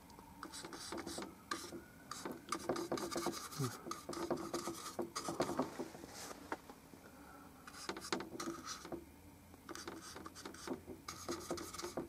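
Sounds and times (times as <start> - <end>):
paintbrush scratchy strokes: 0.5 - 6.4, 9.7 - 12.0.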